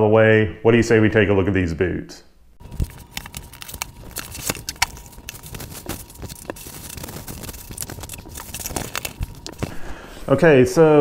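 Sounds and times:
packing tape cut and torn: 0:02.6 - 0:09.8
cardboard scrapes and rustles: 0:02.7 - 0:09.8.

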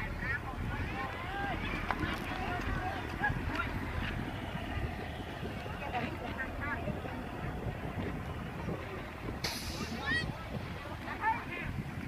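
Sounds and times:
children chattering and calling out: 0:00.0 - 0:12.0
distant crowd voices: 0:00.0 - 0:12.0
steady low rumble: 0:00.0 - 0:12.0.

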